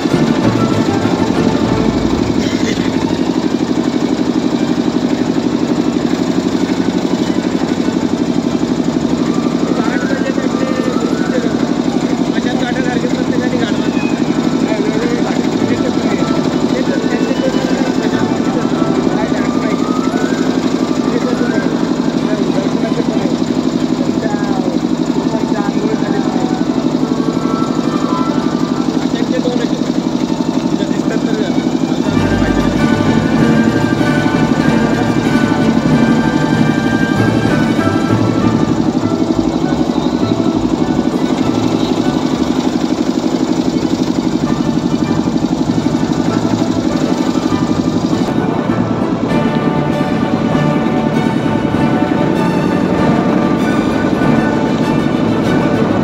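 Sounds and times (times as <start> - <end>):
boat engine running: 0.0 - 56.0
faint voices: 0.0 - 56.0.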